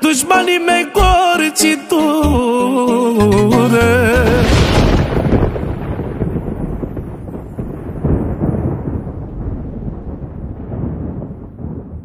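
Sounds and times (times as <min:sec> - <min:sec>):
low thunder-like rumble: 0:04.2 - 0:12.0.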